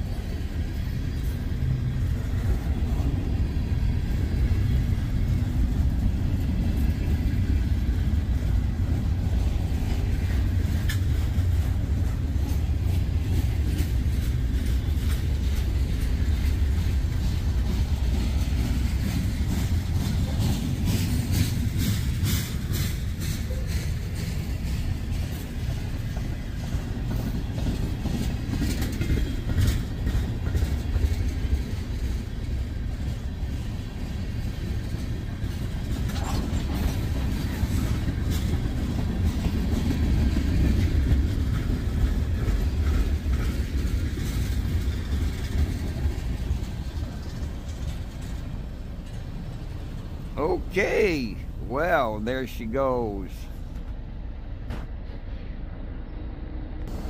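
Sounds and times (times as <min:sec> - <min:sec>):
wheels clicking over rail joints: 0:00.0 - 0:50.4
freight train wheels rumbling: 0:00.0 - 0:57.0.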